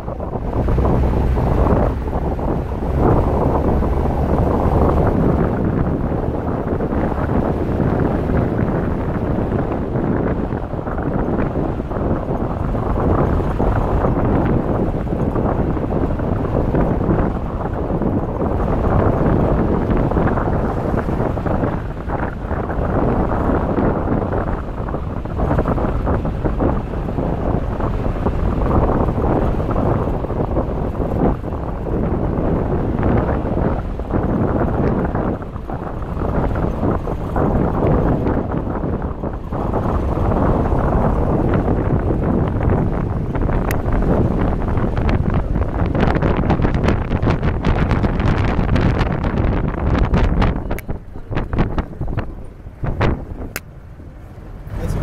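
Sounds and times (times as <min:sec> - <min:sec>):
vehicle engine running: 0:00.0 - 0:55.0
wind buffeting microphone: 0:00.0 - 0:55.0.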